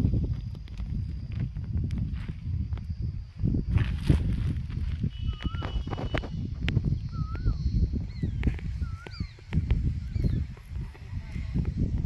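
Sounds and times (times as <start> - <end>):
rumbling and scuffing over dry soil: 0.0 - 12.0
high falling bird chirps: 5.0 - 10.8
bird whistled calls: 5.1 - 10.6.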